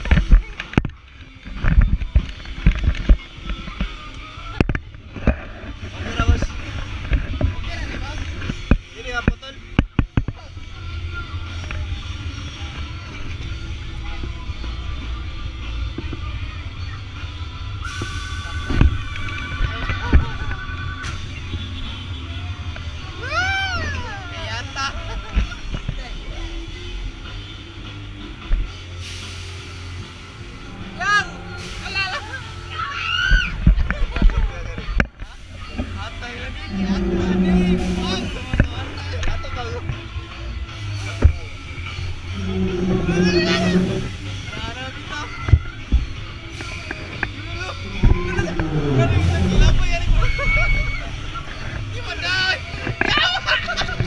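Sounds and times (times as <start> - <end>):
low rumble of ride: 0.0 - 54.0
wind rumble on microphone: 33.3 - 40.0, 41.2 - 52.2.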